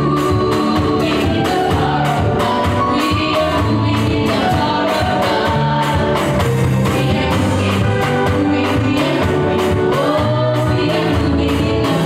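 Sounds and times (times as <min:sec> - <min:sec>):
girls singing gospel: 0:00.0 - 0:12.0
instrumental accompaniment with beat: 0:00.0 - 0:12.0.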